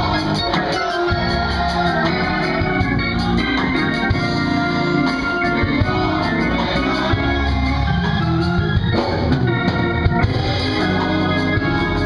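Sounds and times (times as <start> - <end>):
drum kit playing: 0.0 - 12.0
gospel choir singing: 0.0 - 12.0
organ: 0.0 - 12.0.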